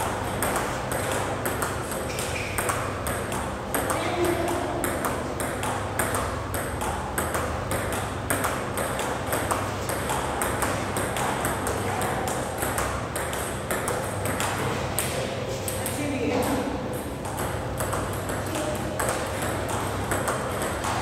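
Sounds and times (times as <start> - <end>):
steady low hum: 0.0 - 21.0
table tennis ball hits: 0.0 - 21.0.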